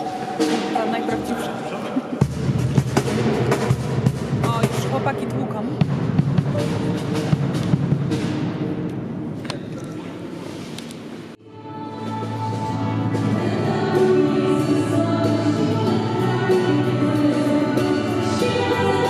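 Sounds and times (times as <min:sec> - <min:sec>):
drums in reverberant church: 0:00.0 - 0:10.6.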